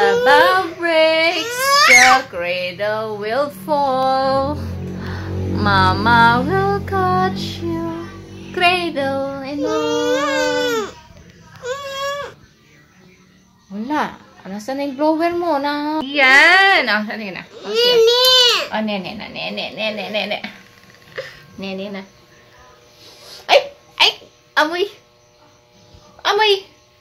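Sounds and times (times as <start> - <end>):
woman singing lullaby: 0.0 - 12.4
higher voice wailing note: 4.2 - 10.9.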